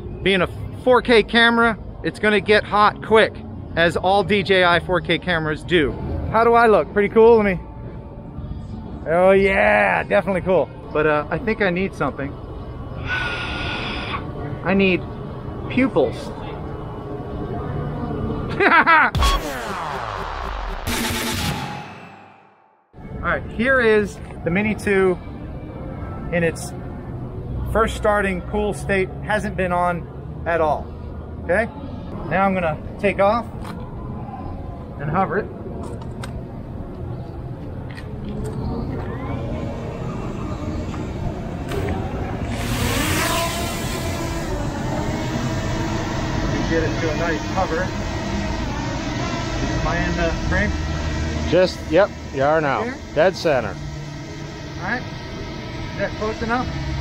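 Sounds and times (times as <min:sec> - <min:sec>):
drone propellers high whine: 0:10.7 - 0:22.4, 0:23.0 - 0:57.0
burst of noise: 0:19.2 - 0:22.4, 0:42.4 - 0:57.0
electronic music sting: 0:19.2 - 0:22.6, 0:42.4 - 0:57.0
long falling sweep: 0:41.6 - 0:57.0.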